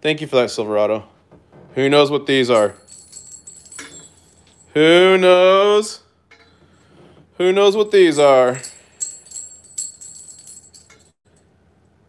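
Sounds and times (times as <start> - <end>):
coins clinking together: 2.5 - 4.7, 8.1 - 11.1.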